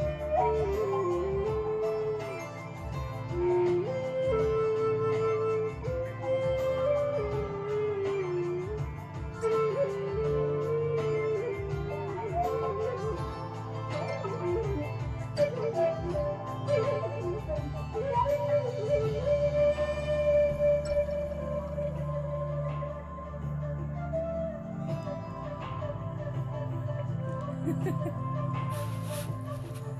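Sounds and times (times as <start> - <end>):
flute melody: 0.0 - 29.9.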